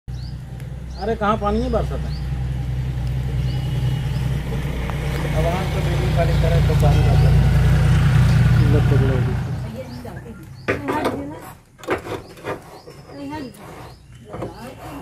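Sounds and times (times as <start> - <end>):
motor engine droning: 0.1 - 10.7.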